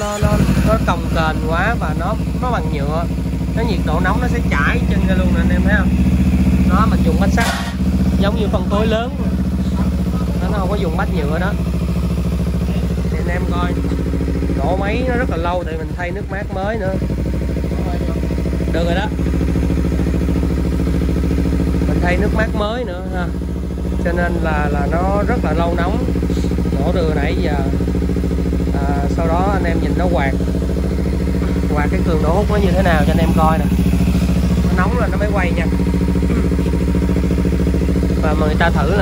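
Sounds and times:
motorcycle engine idling: 0.0s - 39.0s.

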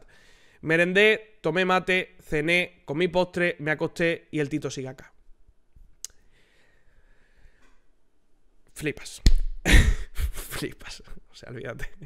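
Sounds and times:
sharp click: 9.2s - 9.6s.

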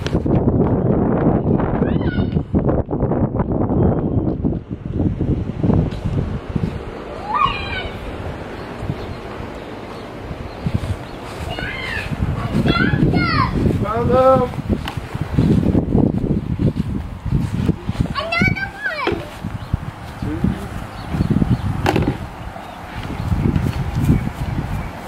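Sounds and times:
child squealing: 1.8s - 2.4s, 7.2s - 8.0s, 11.5s - 13.6s.

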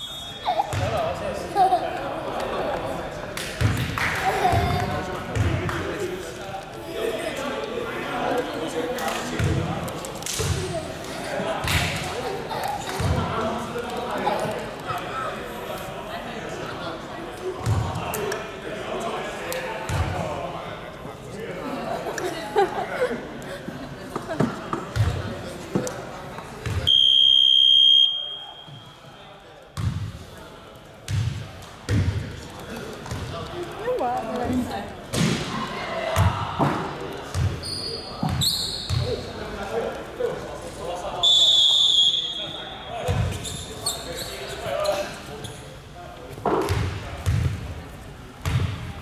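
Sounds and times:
people talking: 0.0s - 49.0s.

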